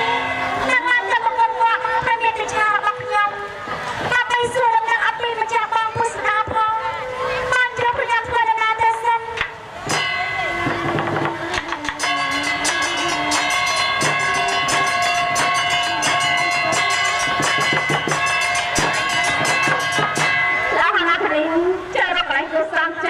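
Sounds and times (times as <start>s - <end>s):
sustained instrumental melody: 0.0s - 3.9s, 9.4s - 22.4s
drums beating: 0.0s - 6.7s, 7.6s - 22.1s
person singing: 10.0s - 17.2s.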